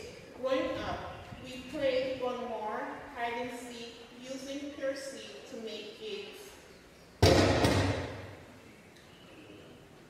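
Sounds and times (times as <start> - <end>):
knock: 7.2 - 8.1
loud thump: 7.2 - 8.4.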